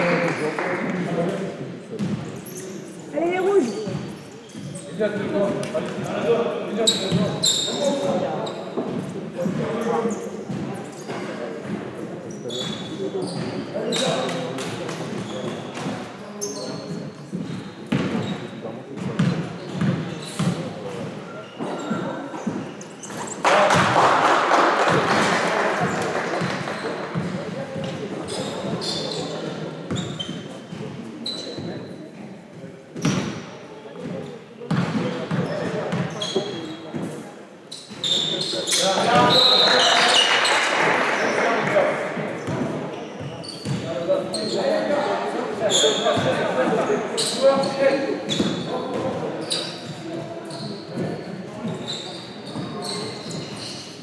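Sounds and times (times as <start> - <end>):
sneaker squeaks: 1.9 - 23.8, 25.8 - 32.0, 33.0 - 44.9, 45.5 - 54.0
applause and cheering: 23.5 - 26.8, 39.7 - 42.0.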